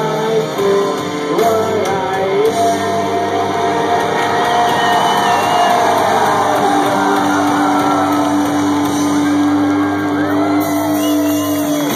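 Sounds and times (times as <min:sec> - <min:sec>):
crowd cheering and whooping: 0:02.9 - 0:11.9.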